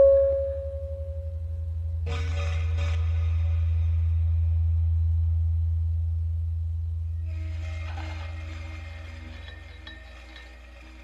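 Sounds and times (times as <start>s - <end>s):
higher held tones: 0.0s - 7.5s
deep electronic drone: 0.0s - 11.0s.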